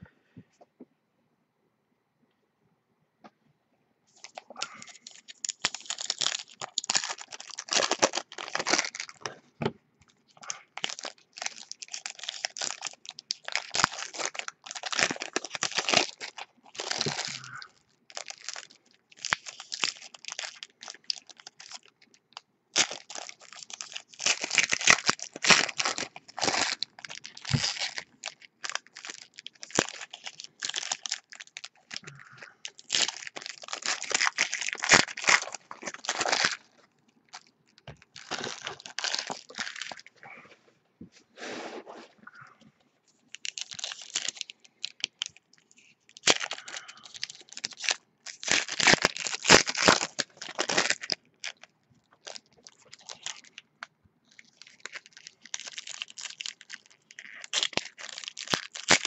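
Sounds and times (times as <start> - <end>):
foil wrappers tearing and crinkling: 4.2 - 9.3, 10.4 - 22.2, 22.8 - 40.1, 43.3 - 53.6, 54.3 - 59.0.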